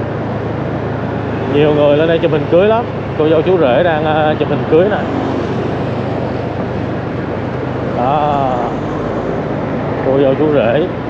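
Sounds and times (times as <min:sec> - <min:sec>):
low engine hum: 0:00.0 - 0:11.0
road traffic rushing: 0:00.0 - 0:11.0
wind: 0:00.0 - 0:11.0
person speaking: 0:07.9 - 0:09.4.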